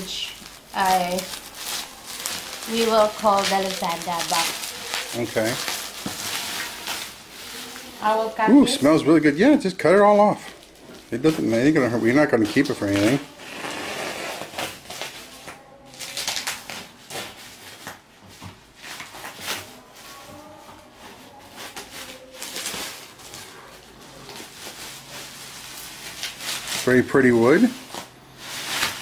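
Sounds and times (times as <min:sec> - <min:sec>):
bubble wrap rustling and crinkling: 0:00.0 - 0:29.0.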